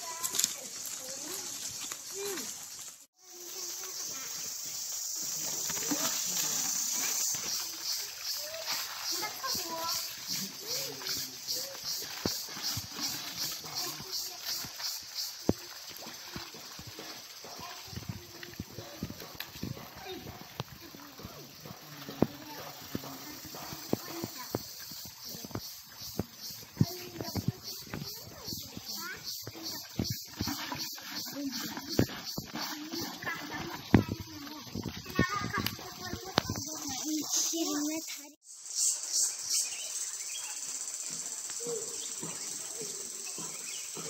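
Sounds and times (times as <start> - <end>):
high-pitched insect chorus: 0.0 - 44.0
faint voices: 3.2 - 38.4.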